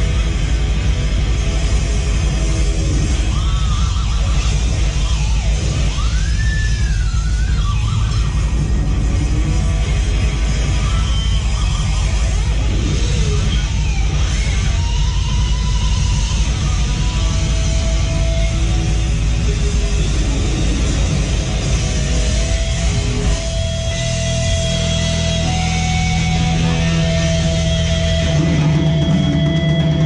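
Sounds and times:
metal band playing live: 0.0 - 30.0.

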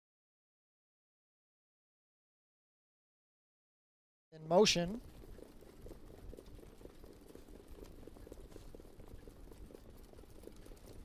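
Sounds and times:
trotting hoofbeats: 4.5 - 11.0.

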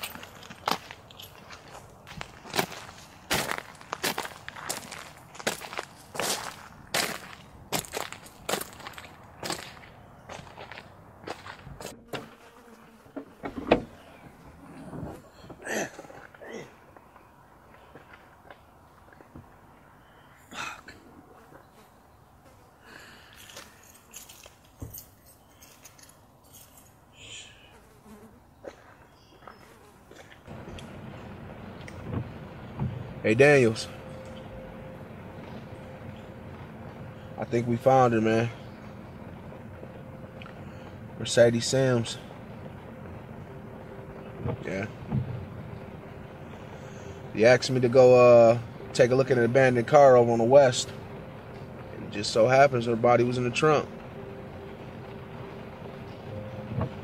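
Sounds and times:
footsteps: 0.0 - 14.4
car trunk unlatching clunk: 13.2 - 14.1
car interior rumble: 30.5 - 57.0.

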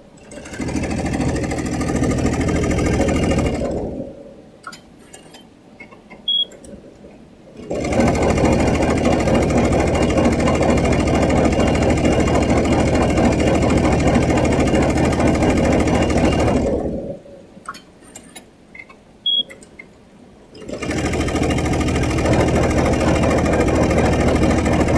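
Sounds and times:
embroidery machine stitching: 0.2 - 4.1, 7.6 - 17.1, 20.6 - 24.9
short high beep: 6.3 - 6.5, 19.3 - 19.6.

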